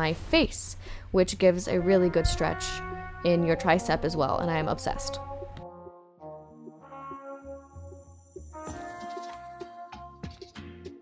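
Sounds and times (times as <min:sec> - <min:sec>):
background music with pulsing bass: 0:02.4 - 0:11.0.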